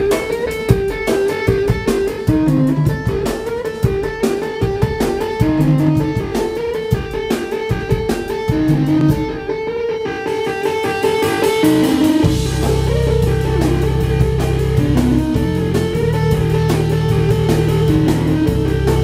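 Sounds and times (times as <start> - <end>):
drum kit beat: 0.0 - 19.0
electric organ melody: 0.0 - 19.0
bass line: 2.3 - 3.2, 5.4 - 6.4, 8.5 - 9.3, 12.2 - 19.0.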